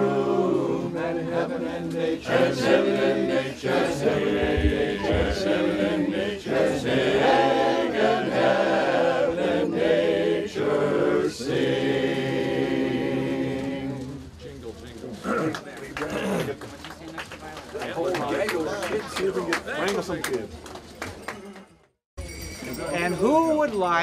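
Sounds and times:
men's chorus singing a cappella: 0.0s - 14.3s.

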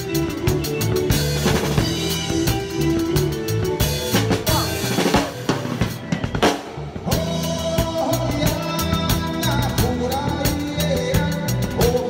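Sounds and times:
drum kit played hard: 0.0s - 12.0s
rock band playing: 0.0s - 12.0s.

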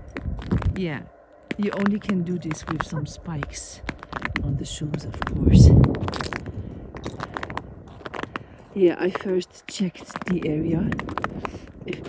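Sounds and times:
spiked shoe footsteps on ice: 1.5s - 11.7s.

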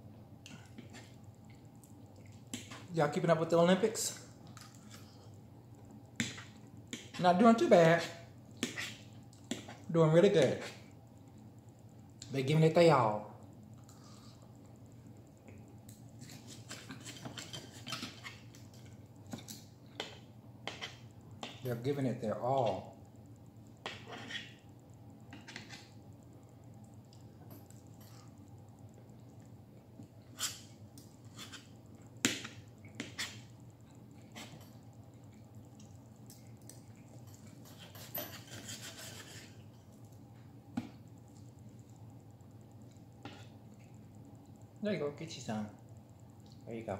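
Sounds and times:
knife and fork scraping a plate: 16.2s - 18.4s, 20.7s - 21.6s, 23.8s - 24.6s, 30.4s - 31.7s, 37.4s - 39.6s
knife sawing scrape on plate: 37.7s - 39.5s.

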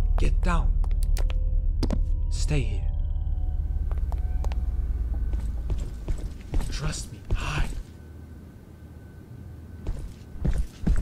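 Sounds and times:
deep steady rumble: 0.0s - 9.8s.

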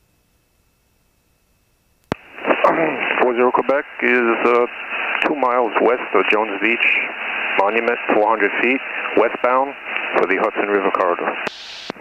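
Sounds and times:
radio transmission click: 2.1s - 6.6s, 7.5s - 12.0s
voice over aircraft radio: 2.4s - 11.6s.

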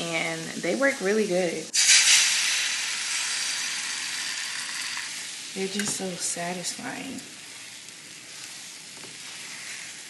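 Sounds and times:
eggs sizzling in frying pan: 0.0s - 10.0s.

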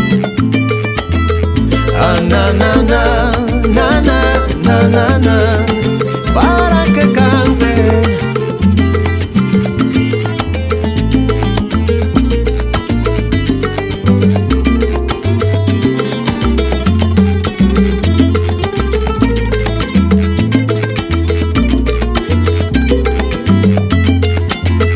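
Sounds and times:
salsa band music: 0.0s - 24.9s
wavering melodic lead line: 0.0s - 24.9s.

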